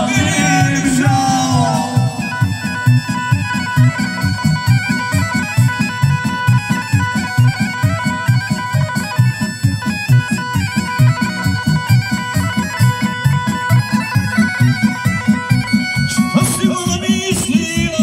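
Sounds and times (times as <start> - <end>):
folk band dance music: 0.0 - 18.0.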